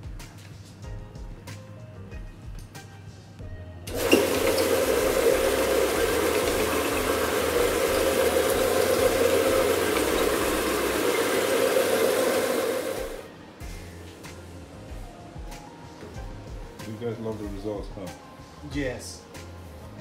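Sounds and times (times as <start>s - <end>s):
cleaning wand spraying and extracting water: 3.9s - 13.3s.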